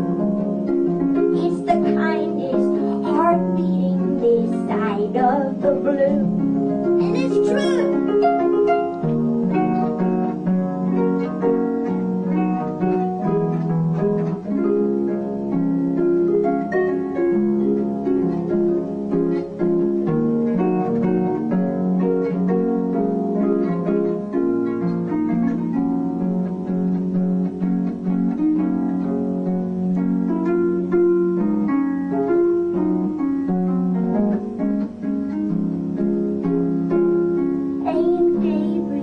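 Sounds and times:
harp plucked notes: 0.0 - 39.0.

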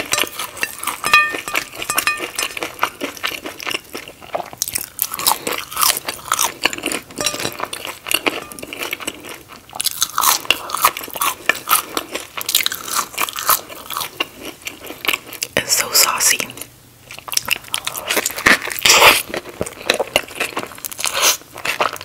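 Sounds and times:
chewing and wet mouth sounds: 0.0 - 16.1, 17.0 - 22.0.

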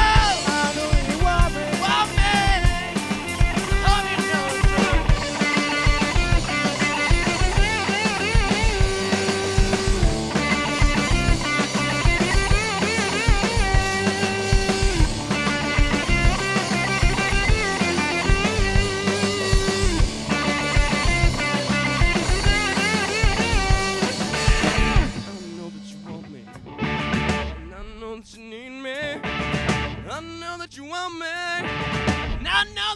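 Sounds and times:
distorted electric guitar: 0.0 - 32.9
drum kit: 0.0 - 32.9.

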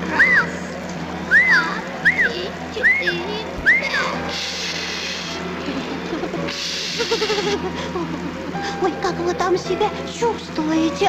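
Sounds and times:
whistle-like tone: 0.1 - 0.6, 1.3 - 4.5
hissing bursts: 4.2 - 5.5, 6.5 - 7.3.

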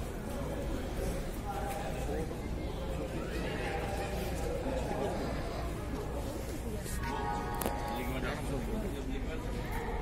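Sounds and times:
voices: 0.0 - 10.0.

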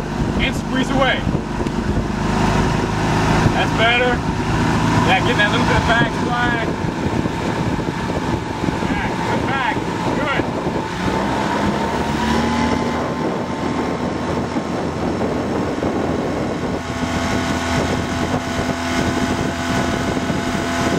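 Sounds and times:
outboard motor running: 0.0 - 20.9
wind buffeting microphone: 0.0 - 20.9.

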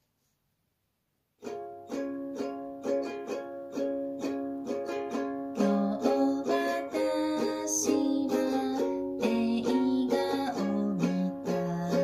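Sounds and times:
ukulele strumming chords: 1.4 - 12.0.

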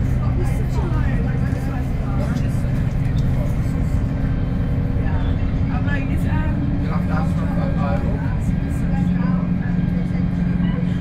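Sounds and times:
bus diesel engine running: 0.0 - 11.0
faint voices talking: 0.0 - 11.0.

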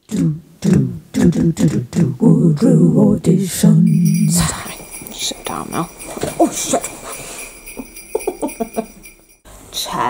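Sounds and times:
sleigh bells jingling music: 3.8 - 9.4.

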